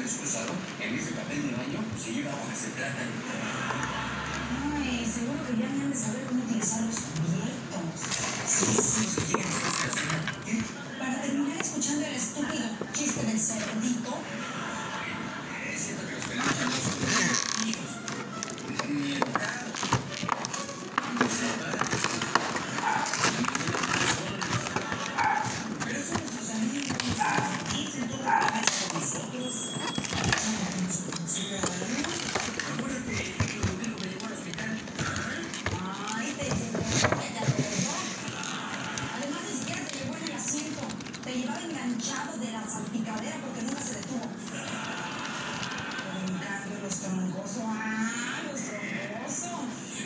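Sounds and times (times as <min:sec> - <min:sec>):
voices: 0:03.0 - 0:50.0
plastic packaging crackling: 0:06.5 - 0:10.9, 0:16.2 - 0:47.0.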